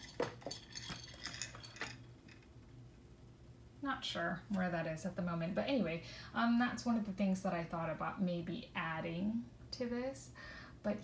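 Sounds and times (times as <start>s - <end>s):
small hard objects clinking: 0.0s - 2.5s.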